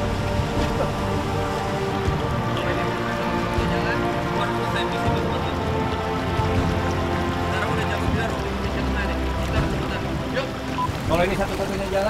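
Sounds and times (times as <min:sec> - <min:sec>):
background music: 0:00.0 - 0:12.0
river water flowing: 0:00.0 - 0:12.0.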